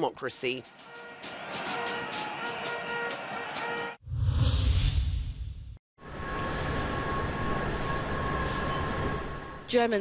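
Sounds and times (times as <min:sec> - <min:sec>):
railway station hall ambience: 0:00.5 - 0:03.9, 0:06.0 - 0:10.0
deep boom with whoosh: 0:04.0 - 0:05.8.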